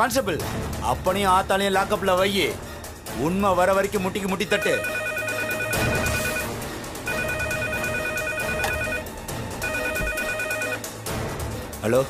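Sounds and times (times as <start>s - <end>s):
telephone ringing: 4.5s - 10.9s.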